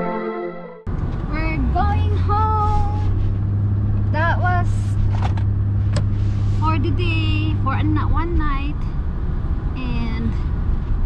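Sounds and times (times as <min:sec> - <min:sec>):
car interior engine and road drone: 0:00.9 - 0:11.0
woman talking: 0:01.3 - 0:03.1, 0:04.1 - 0:05.0, 0:06.6 - 0:08.9, 0:09.8 - 0:10.4.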